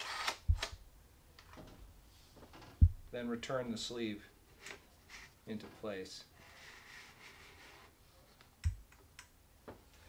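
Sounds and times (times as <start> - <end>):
camera shutter clicking: 0.0 - 0.7.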